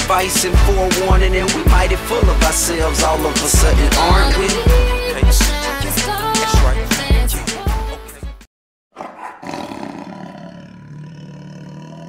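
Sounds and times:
tiger roaring: 9.0 - 12.0.

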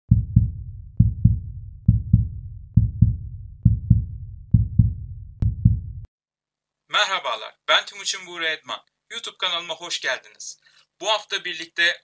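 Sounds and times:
slow heartbeat: 0.1 - 6.1.

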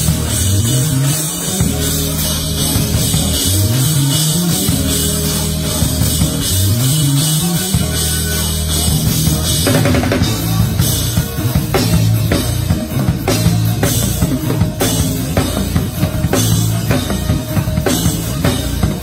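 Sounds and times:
drum kit played fast: 0.0 - 19.0
electric bass guitar: 0.0 - 19.0.

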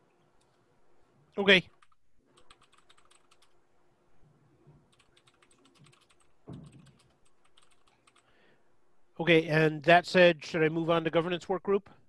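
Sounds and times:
typing on computer keyboard: 1.7 - 3.6, 4.9 - 8.3.

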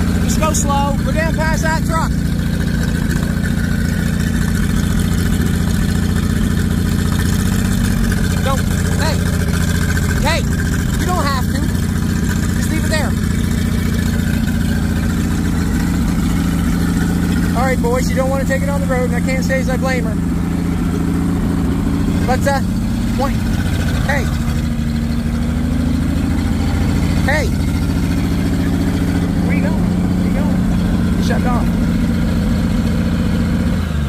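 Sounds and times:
race car engine running at low revs: 0.0 - 34.0.

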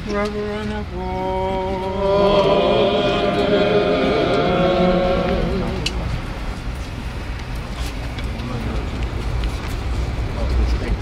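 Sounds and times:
murmuring voices: 0.0 - 6.8
steady low rumble: 0.0 - 11.0.

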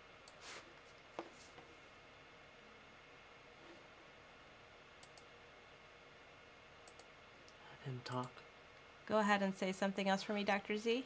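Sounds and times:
soft clicks: 5.0 - 5.3, 6.8 - 8.9.

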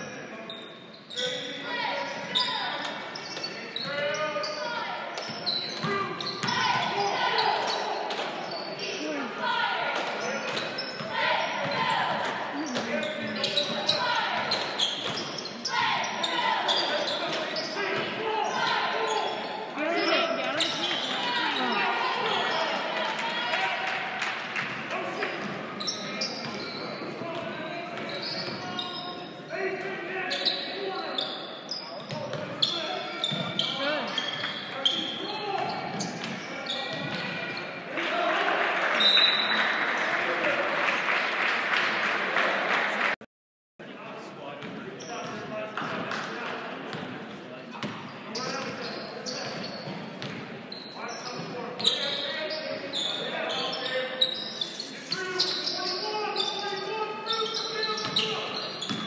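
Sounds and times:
voices of players and spectators: 0.0 - 43.2, 43.8 - 59.0.

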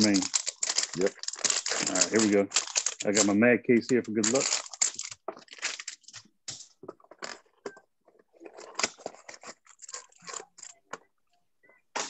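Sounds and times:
plastic wrapper crinkling: 0.0 - 11.2.

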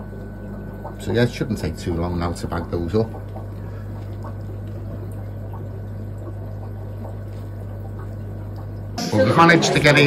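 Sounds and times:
aquarium equipment humming: 0.0 - 10.0
faint trickling water: 0.0 - 10.0.

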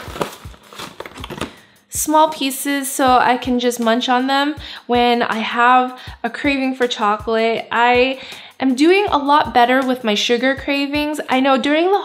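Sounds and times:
cardboard box opening: 0.0 - 1.6
wrappers rustling and crinkling: 0.0 - 1.6.

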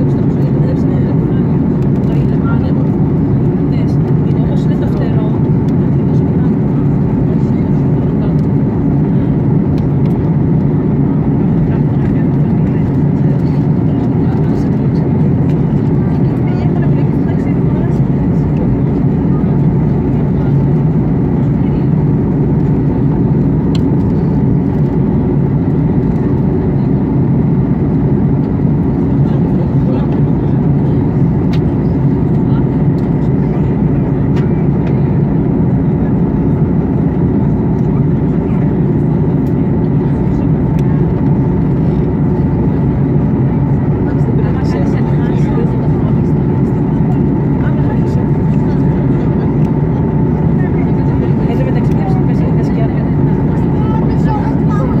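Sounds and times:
airliner cabin noise: 0.0 - 55.0.

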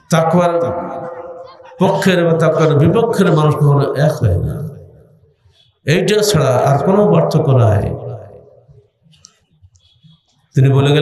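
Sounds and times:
man speaking: 0.0 - 4.8, 5.8 - 8.2, 10.6 - 11.0.

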